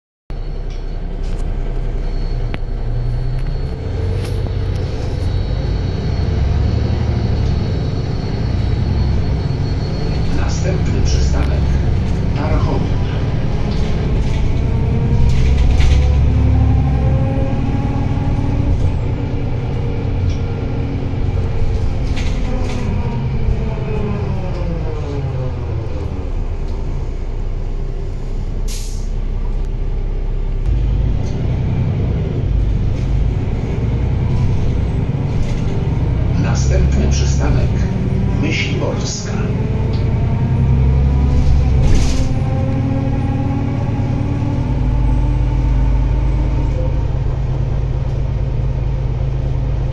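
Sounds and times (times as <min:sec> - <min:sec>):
diesel engine rumble: 0:00.3 - 0:49.9
drivetrain whine: 0:00.3 - 0:49.9
air release hiss: 0:28.7 - 0:29.1.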